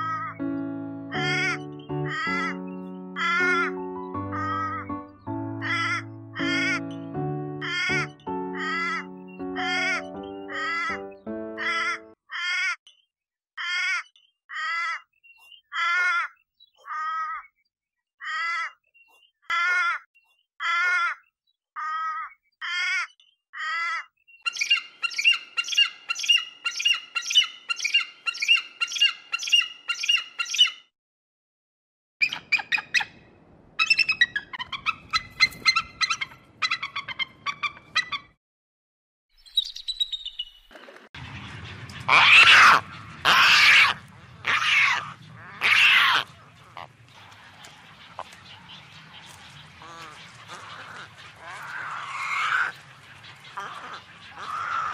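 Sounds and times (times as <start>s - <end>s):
music: 0.0s - 12.2s
bird cawing: 1.2s - 5.0s, 5.6s - 6.9s, 7.6s - 12.8s, 13.6s - 15.1s, 15.7s - 17.5s, 18.2s - 18.8s, 19.5s - 30.7s, 41.9s - 54.9s.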